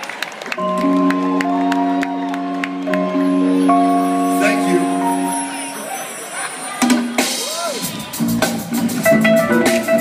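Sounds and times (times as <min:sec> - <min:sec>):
live band playing: 0:00.5 - 0:10.0
drum kit beat: 0:06.8 - 0:10.0.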